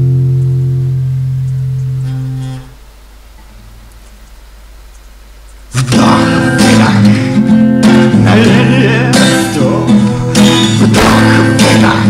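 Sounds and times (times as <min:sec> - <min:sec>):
strummed guitar chord: 0:00.0 - 0:02.9, 0:05.7 - 0:12.0
cassette hiss and mains hum: 0:00.0 - 0:12.0.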